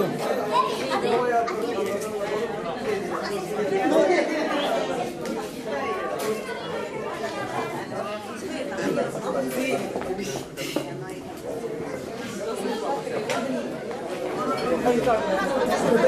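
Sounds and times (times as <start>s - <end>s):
chatter of many guests: 0.0s - 16.0s.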